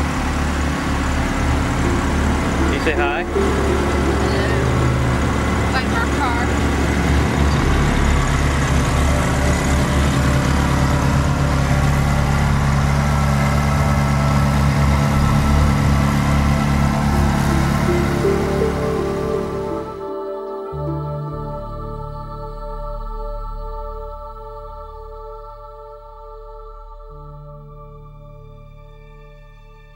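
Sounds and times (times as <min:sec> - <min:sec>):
car engine idling: 0:00.0 - 0:25.1
music: 0:00.0 - 0:29.9.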